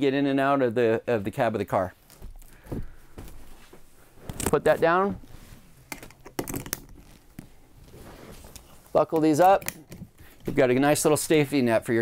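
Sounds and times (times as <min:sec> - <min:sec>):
soft footsteps on floor: 0:02.0 - 0:05.7.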